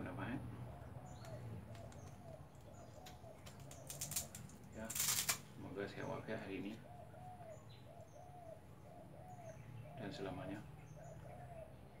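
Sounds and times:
dove cooing: 0.6s - 4.4s, 6.0s - 12.0s.

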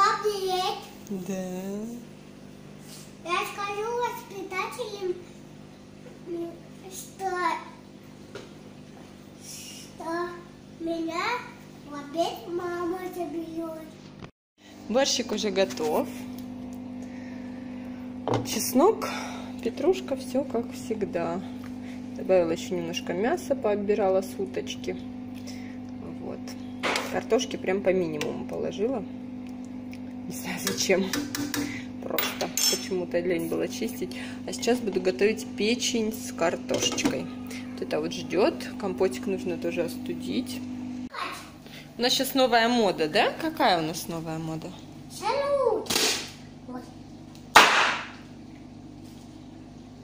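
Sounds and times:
steady low hum: 14.6s - 50.0s.

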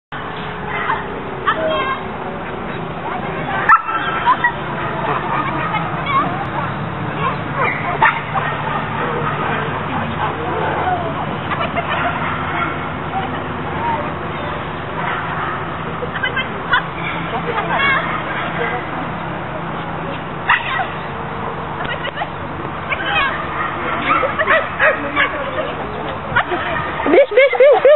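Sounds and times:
voices outdoors: 0.1s - 27.9s
small dog yipping: 3.7s - 4.5s
dog barking: 3.7s - 5.8s, 7.2s - 10.8s.

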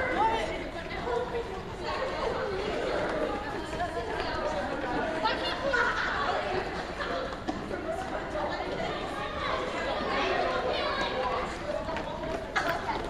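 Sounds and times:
children talking at once: 0.0s - 13.0s.

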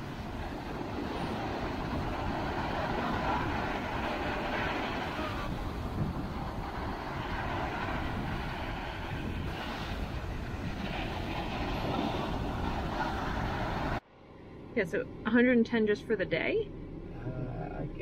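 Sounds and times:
ocean surf breaking: 0.0s - 14.0s
wind buffeting microphone: 0.0s - 14.0s.

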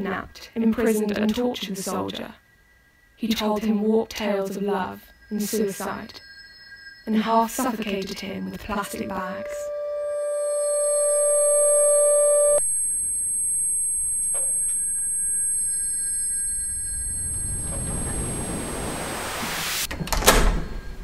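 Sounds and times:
held ringing tone: 2.6s - 19.0s
hissing swell: 5.1s - 12.6s, 14.9s - 19.9s.

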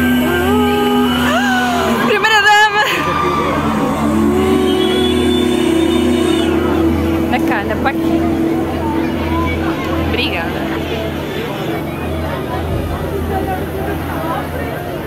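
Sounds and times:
crowd chatter: 0.0s - 15.0s
held synth note: 0.0s - 15.0s
low bass drone: 0.0s - 15.0s
crowd whistles: 4.4s - 6.7s.

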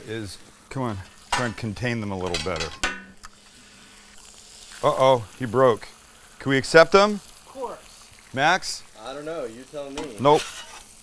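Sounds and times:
eggs sizzling on a griddle: 0.0s - 11.0s.

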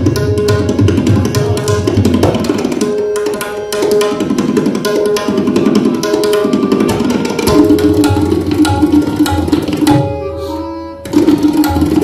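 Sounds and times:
rapid tabla strokes: 0.0s - 12.0s
harmonium repeating melody: 3.0s - 12.0s.

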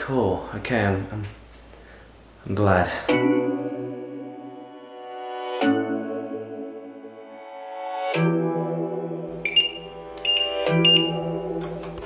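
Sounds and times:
background music: 2.8s - 12.0s
touch control beeps: 9.4s - 11.4s.

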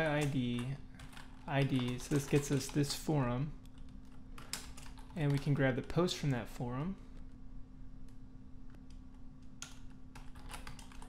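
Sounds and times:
computer keyboard typing: 0.0s - 3.0s, 3.6s - 6.0s, 8.8s - 11.0s.

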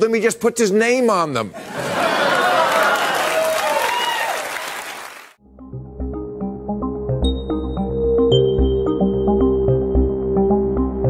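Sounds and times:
audience laughing: 1.6s - 3.5s
audience applauding: 1.8s - 5.4s.

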